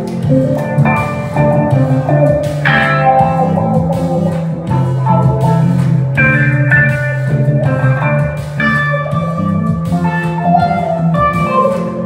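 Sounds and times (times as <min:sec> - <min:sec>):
electric guitar: 0:00.0 - 0:12.0
keyboard chords: 0:00.0 - 0:12.0
low bass line: 0:00.0 - 0:12.0
programmed beats: 0:00.0 - 0:12.0.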